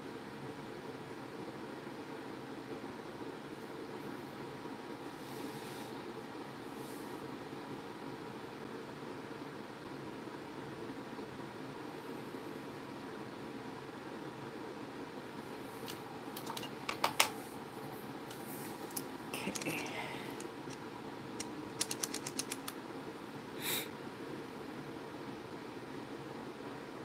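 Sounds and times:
low background hum: 0.0 - 27.0
small tools clicking on table: 21.4 - 22.7.

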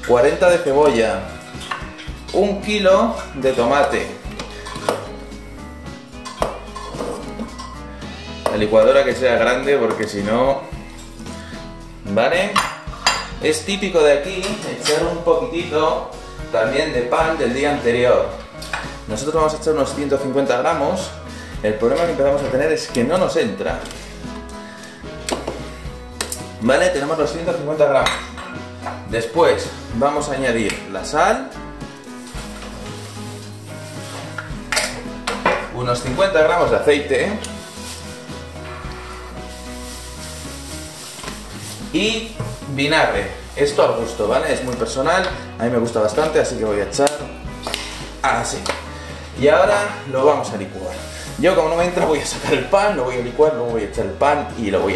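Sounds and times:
background music: 0.0 - 54.9
salt pouring granular hiss: 39.3 - 43.8.

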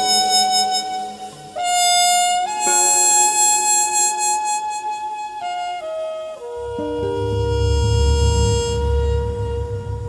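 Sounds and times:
held trumpet note: 0.0 - 10.0
deep bass drone: 6.6 - 10.0.

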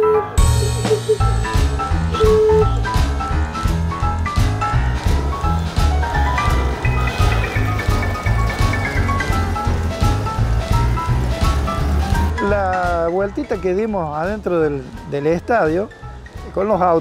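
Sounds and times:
music with beat and bass: 0.2 - 15.1.

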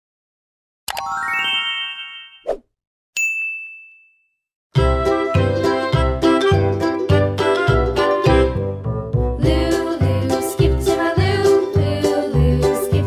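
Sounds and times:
bright children's music: 0.9 - 2.5, 4.8 - 13.0
high bell ding: 3.2 - 4.4.

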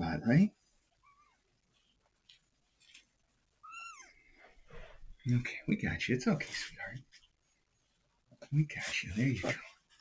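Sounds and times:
faint soft sounds: 0.0 - 10.0
kitten meowing: 3.6 - 4.1.

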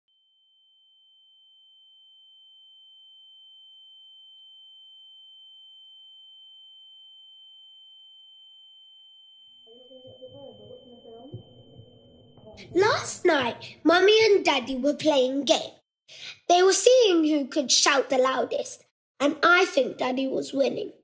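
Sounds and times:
woman speaking: 9.7 - 11.5, 12.4 - 15.1.

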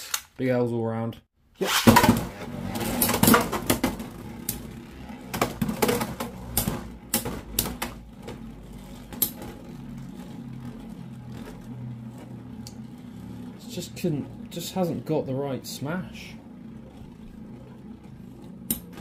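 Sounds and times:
spinning tops whirring: 1.6 - 19.0.

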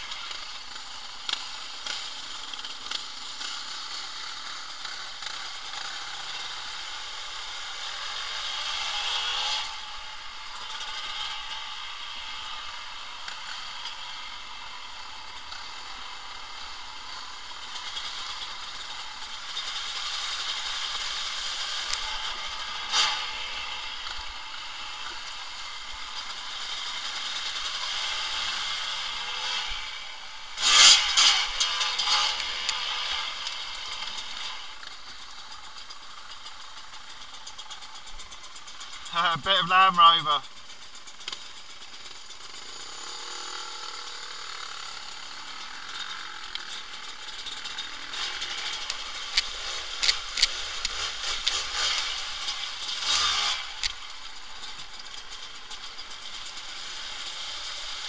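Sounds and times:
bike rattling and clattering: 0.0 - 58.0
motorcycle engine running: 0.0 - 58.0.

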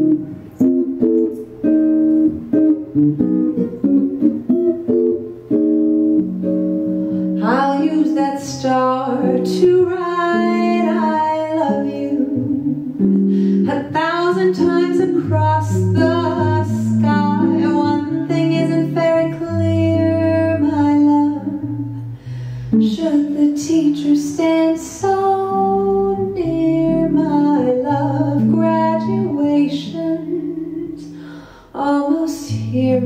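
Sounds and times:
jazz guitar chords: 0.0 - 33.0
woman singing into microphone: 7.4 - 22.1, 22.7 - 33.0.

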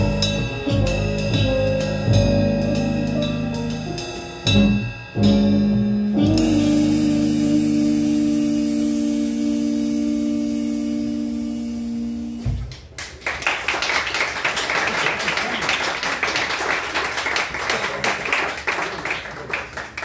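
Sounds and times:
jazz band playing: 0.0 - 12.9
applause: 12.7 - 20.0.

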